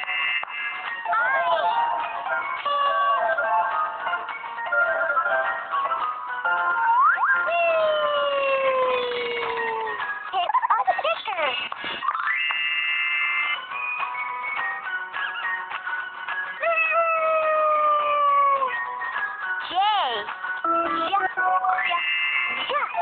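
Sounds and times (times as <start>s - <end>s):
cartoon game music: 0.0s - 15.8s, 16.4s - 23.0s.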